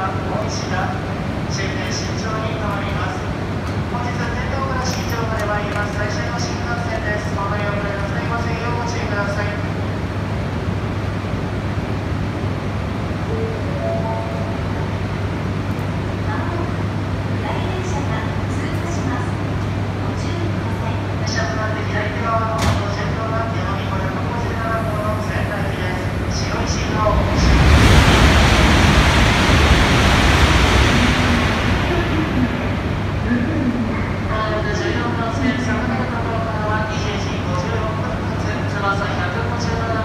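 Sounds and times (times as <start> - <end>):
train low hum: 0.0 - 40.0
rushing noise: 23.9 - 34.8.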